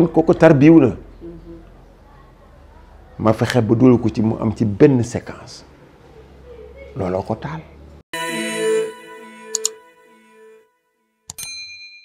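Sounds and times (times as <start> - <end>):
notification bell chime: 8.2 - 10.6.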